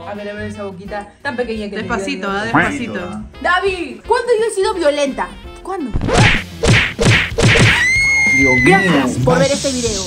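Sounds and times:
comic slap hits: 6.0 - 7.9.

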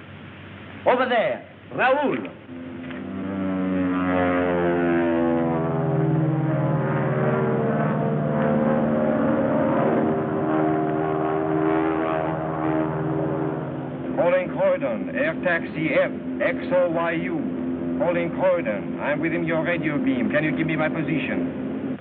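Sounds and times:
propeller aeroplane engine droning: 0.0 - 22.0.

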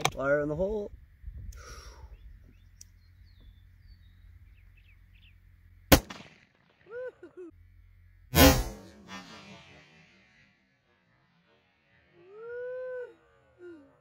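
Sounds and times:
rifle shot: 5.9 - 6.8, 8.4 - 10.2
loud long bang: 8.3 - 10.3.

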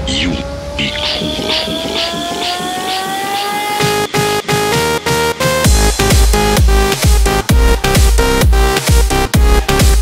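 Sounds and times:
synth tone sweeping upward: 0.0 - 5.6
hi-hat pattern: 0.9 - 9.0.

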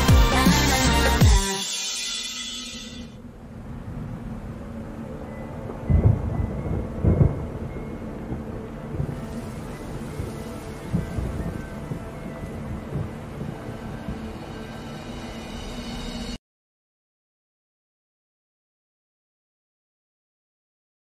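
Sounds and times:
low rumbling booms: 5.6 - 16.4
steady hiss: 6.6 - 16.4.

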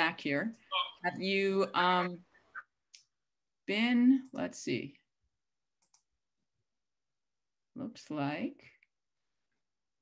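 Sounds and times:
faint clicks: 5.8 - 6.1.

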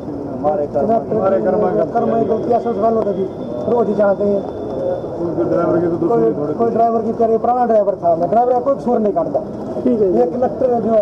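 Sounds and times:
man talking: 0.4 - 4.4, 5.3 - 11.0.

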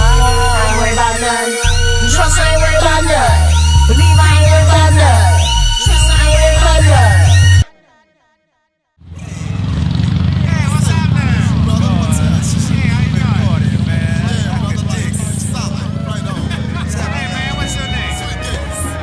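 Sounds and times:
many overlapping voices: 0.0 - 7.5, 9.2 - 19.0
motorcycle engine rumbling: 0.0 - 7.6, 9.0 - 19.0.

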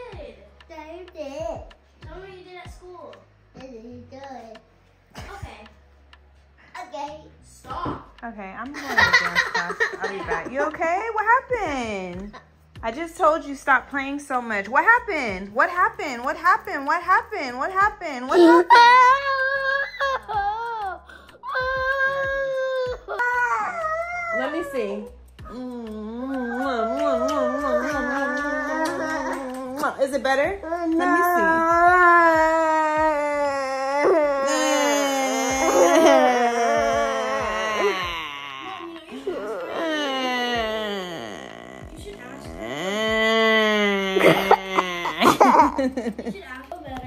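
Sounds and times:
toddler boy crying: 18.3 - 24.9, 25.5 - 46.1.

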